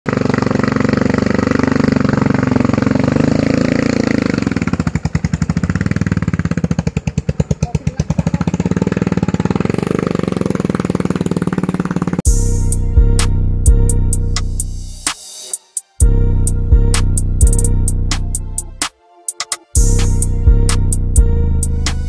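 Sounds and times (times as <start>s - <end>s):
motorcycle engine bogging uphill: 0.1s - 14.2s.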